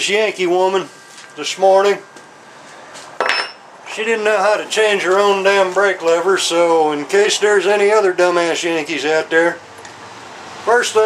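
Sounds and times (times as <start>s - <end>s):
metallic clink with ring: 3.2s - 3.6s.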